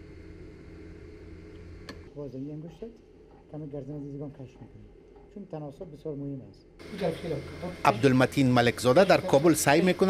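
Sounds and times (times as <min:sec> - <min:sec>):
low mechanical hum with tones: 0:00.0 - 0:10.0.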